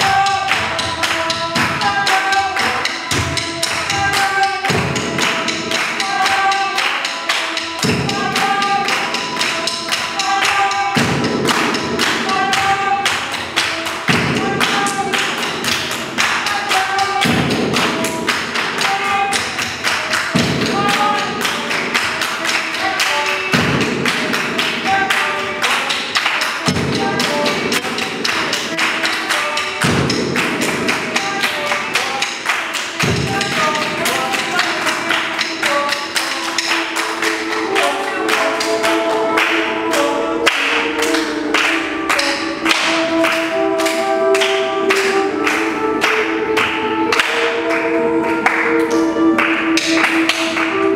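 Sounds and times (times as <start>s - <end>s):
hand claps and taps: 0.0s - 50.9s.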